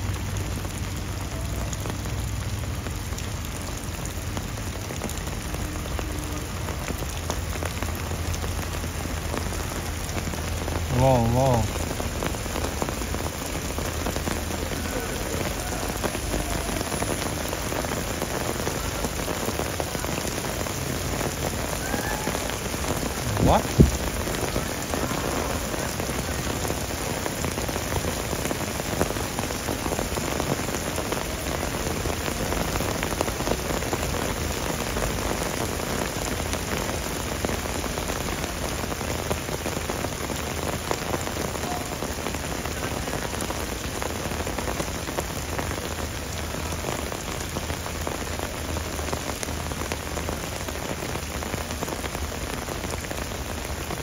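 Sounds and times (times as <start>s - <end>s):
heavy rain splashing on paving: 0.0s - 54.0s.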